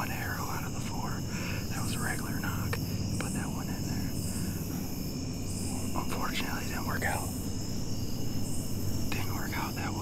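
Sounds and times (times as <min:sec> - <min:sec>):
man whispering: 0:00.0 - 0:04.7, 0:05.7 - 0:07.4, 0:09.1 - 0:10.0.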